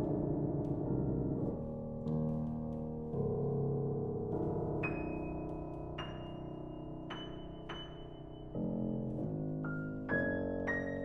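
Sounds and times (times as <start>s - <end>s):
grand piano chords: 0.0s - 11.0s.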